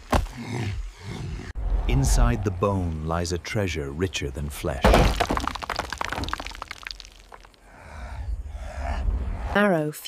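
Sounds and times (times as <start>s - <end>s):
bone smashing on stone: 4.8s - 7.5s.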